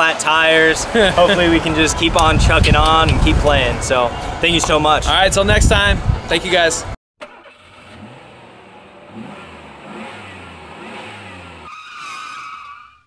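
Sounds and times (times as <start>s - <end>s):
vehicle engine accelerating: 7.6s - 11.7s.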